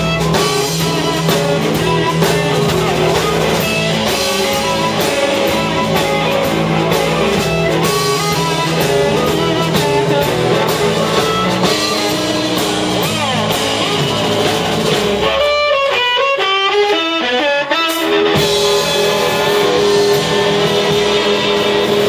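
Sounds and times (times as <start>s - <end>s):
amplified harmonica: 0.0s - 14.2s, 15.2s - 21.7s
drum kit: 0.0s - 22.0s
electric guitar: 0.0s - 22.0s.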